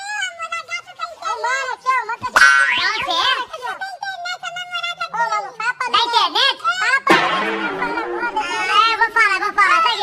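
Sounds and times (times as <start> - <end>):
excited voices squealing: 2.4 - 3.3.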